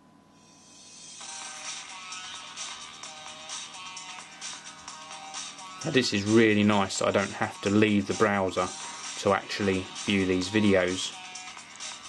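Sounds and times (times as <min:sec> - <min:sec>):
intro music from phone loudspeaker: 0:00.4 - 0:12.0.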